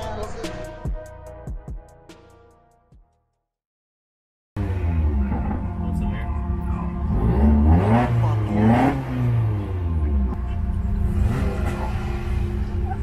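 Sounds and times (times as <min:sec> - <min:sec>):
car engine revving: 0:04.6 - 0:13.0.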